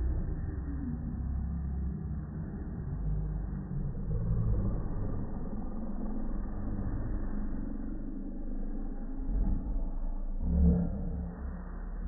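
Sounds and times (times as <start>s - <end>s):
slowed-down voices deep rumble: 0.0s - 12.0s.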